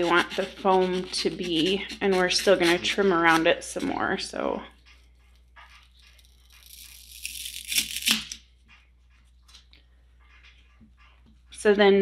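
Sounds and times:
craft knife scraping through foam: 0:00.0 - 0:04.1, 0:04.9 - 0:08.2.

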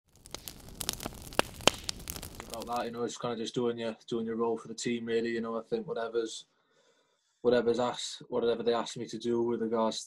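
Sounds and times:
fire crackling: 0:00.0 - 0:03.1
sharp pops: 0:00.1 - 0:03.0.

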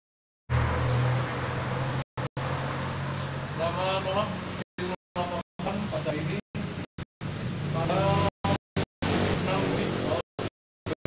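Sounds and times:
engine hum: 0:00.5 - 0:10.2
road traffic noise: 0:00.5 - 0:10.5.

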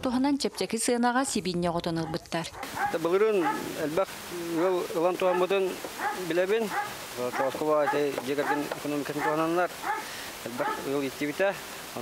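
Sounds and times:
man speaking: 0:02.8 - 0:09.7, 0:10.4 - 0:12.0.

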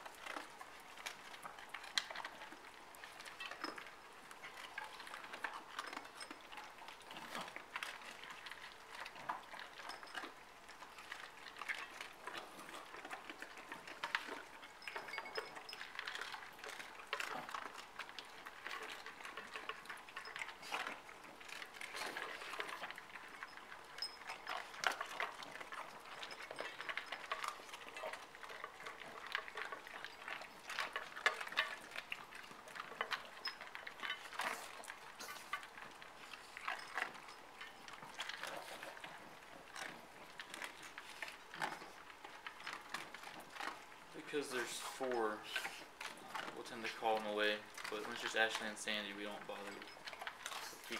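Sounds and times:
dogs crunching and chewing food: 0:00.0 - 0:50.9.

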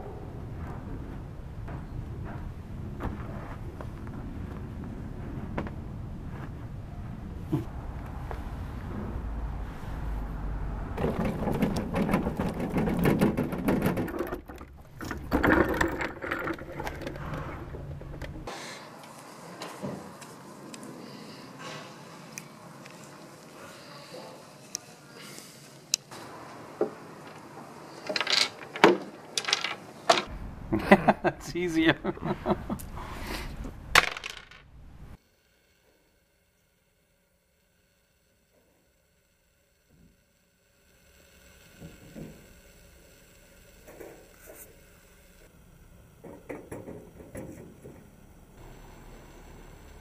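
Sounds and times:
metal cart rattling over paving: 0:11.0 - 0:18.2
dice rattling and settling: 0:28.1 - 0:30.3, 0:34.0 - 0:34.6
dice clacking on board: 0:34.0 - 0:34.6.

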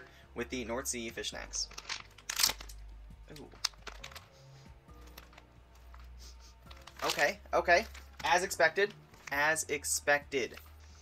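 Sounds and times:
wrapper crinkling: 0:01.5 - 0:04.3, 0:05.0 - 0:09.4
plastic packet ripping: 0:01.6 - 0:04.3, 0:06.7 - 0:08.4.

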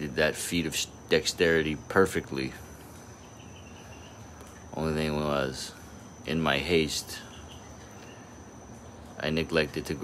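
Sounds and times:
high-pitched insect trill: 0:00.0 - 0:10.0
low even hum: 0:00.0 - 0:10.0.

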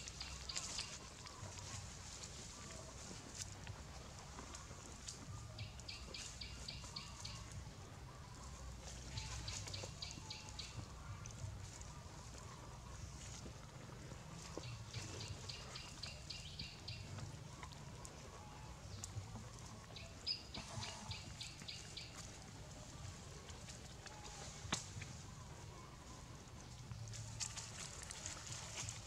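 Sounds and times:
low outdoor rumble: 0:00.0 - 0:29.0.

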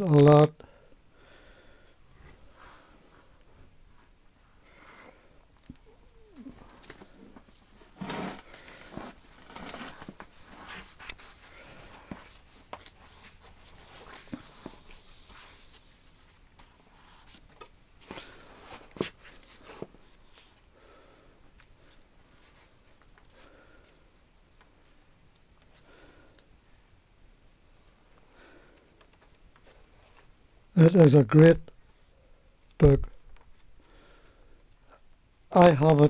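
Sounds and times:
book pages rustling: 0:06.5 - 0:20.6.

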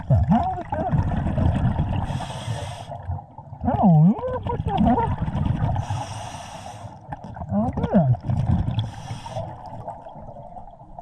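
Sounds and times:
regulator hissing inhalations: 0:02.1 - 0:03.0, 0:05.8 - 0:07.0, 0:08.9 - 0:09.6.

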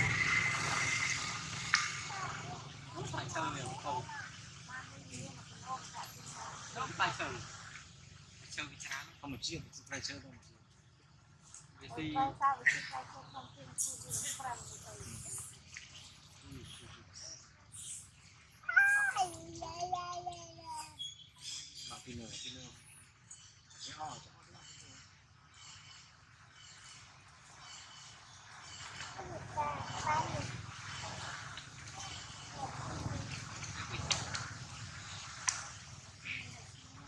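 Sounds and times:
low outdoor rumble: 0:00.0 - 0:21.3, 0:22.7 - 0:37.0
macaques calling sharply: 0:12.4 - 0:16.1, 0:17.7 - 0:19.6, 0:35.2 - 0:36.8
baby monkey wailing cry: 0:18.6 - 0:19.4.

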